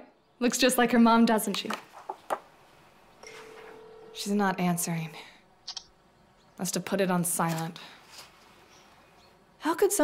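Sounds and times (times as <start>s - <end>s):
telephone ringback tone: 3.2s - 4.4s
soft clicks: 5.7s - 5.9s.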